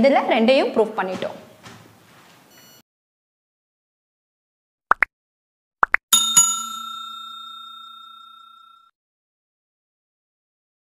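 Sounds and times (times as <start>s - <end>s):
bell ding: 6.1s - 8.9s.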